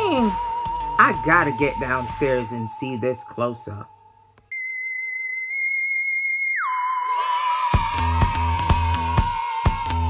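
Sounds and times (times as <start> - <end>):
high electronic whistle tone: 4.5 - 7.4.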